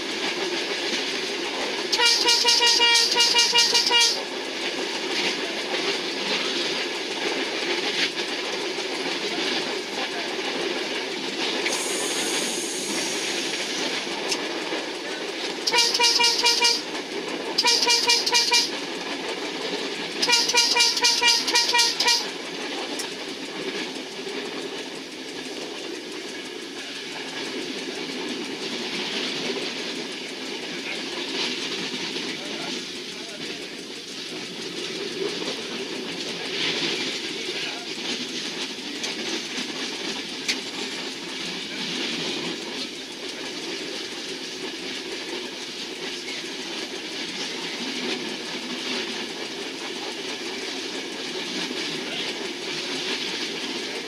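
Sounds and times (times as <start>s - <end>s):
train running on rails: 0.0s - 54.0s
train horn blasts: 1.9s - 4.3s, 15.6s - 17.0s, 17.6s - 18.8s, 20.2s - 22.4s
brief hiss: 11.6s - 13.8s.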